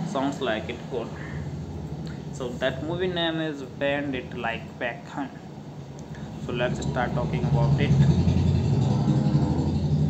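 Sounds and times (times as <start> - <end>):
low engine-like rumble: 0.0 - 10.0.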